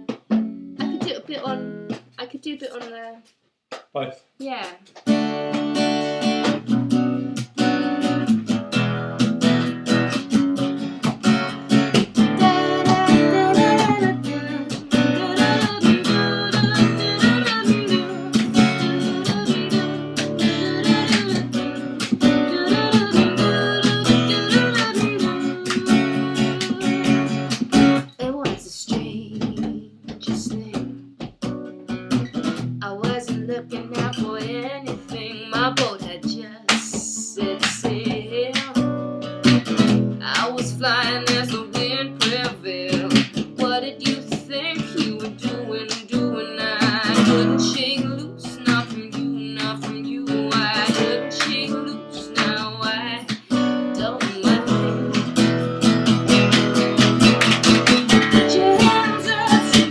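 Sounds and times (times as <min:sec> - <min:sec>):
acoustic guitar strummed chords: 0:00.0 - 0:02.2, 0:05.0 - 0:28.1, 0:29.0 - 0:59.9
woman singing: 0:00.8 - 0:03.2, 0:12.2 - 0:27.5, 0:28.1 - 0:31.0, 0:32.8 - 0:38.9, 0:40.2 - 0:55.7, 0:57.2 - 0:59.9.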